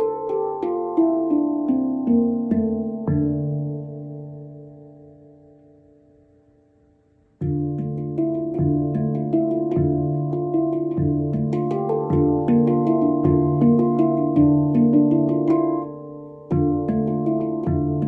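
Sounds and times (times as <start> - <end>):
handpan played by hand: 0.0 - 6.4, 7.2 - 18.0.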